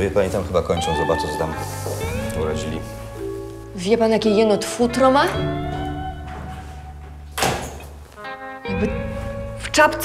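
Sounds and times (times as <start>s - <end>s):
door shutting: 5.2s - 8.0s.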